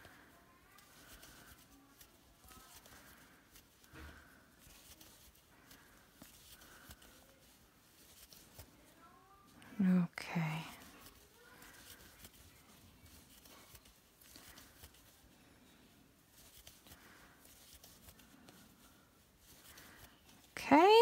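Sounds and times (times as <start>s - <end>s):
faint rustling of yarn: 0.0s - 21.0s.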